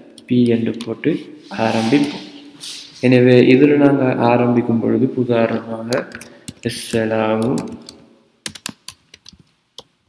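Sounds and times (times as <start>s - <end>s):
keyboard keystrokes: 7.4s - 9.4s.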